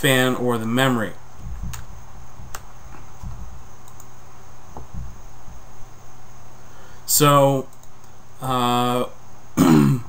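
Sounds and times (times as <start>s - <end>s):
room tone hiss: 0.0s - 10.0s
low rumble: 1.3s - 3.8s, 4.8s - 6.0s
faint clicks: 2.5s - 4.2s.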